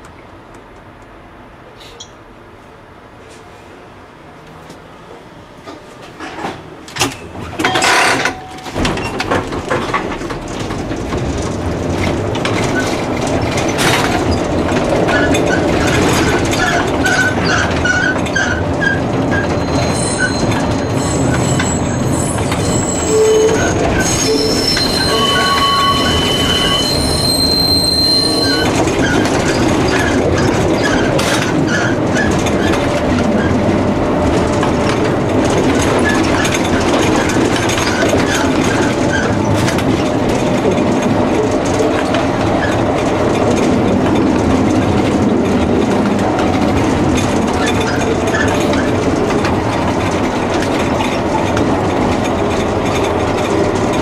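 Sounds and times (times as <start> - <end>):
tram wheels rumbling on rails: 0.0 - 54.0
wheels squealing on a curve: 15.0 - 32.8.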